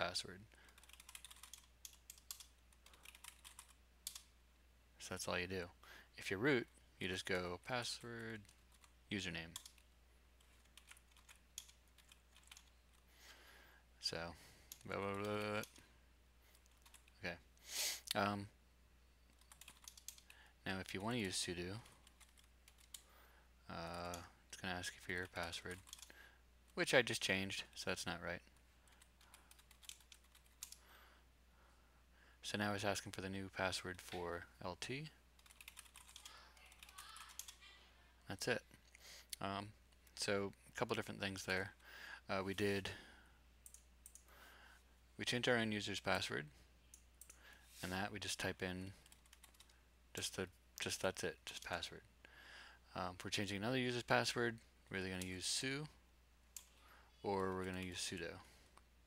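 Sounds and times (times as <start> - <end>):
computer keyboard keystrokes: 0.7 - 4.3, 9.5 - 13.0, 19.3 - 20.3, 25.4 - 26.1, 29.0 - 30.8, 35.4 - 37.6, 49.0 - 49.8.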